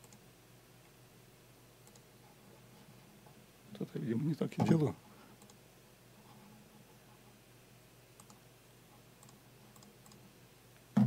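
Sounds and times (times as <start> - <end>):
computer mouse clicks: 0.0 - 0.2, 1.8 - 2.1, 5.4 - 5.6, 8.2 - 8.4, 9.2 - 10.2.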